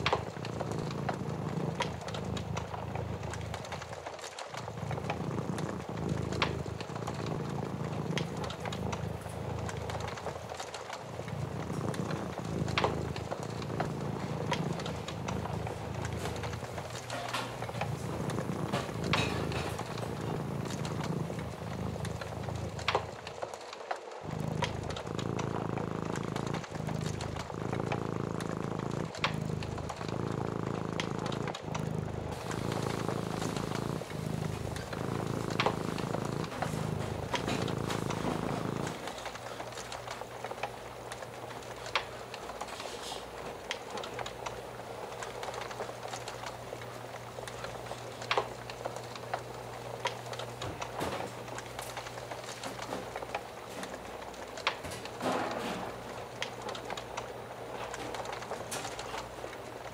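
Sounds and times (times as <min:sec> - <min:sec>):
cat purring: 0:00.0 - 0:59.9
wood fire crackling: 0:00.0 - 0:59.9.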